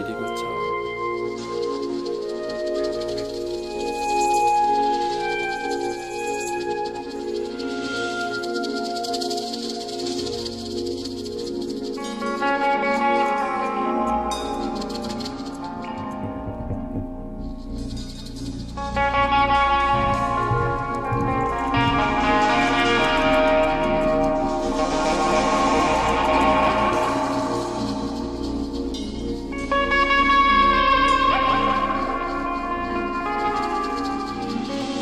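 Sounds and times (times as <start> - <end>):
electric guitar held notes: 18.7 - 28.3.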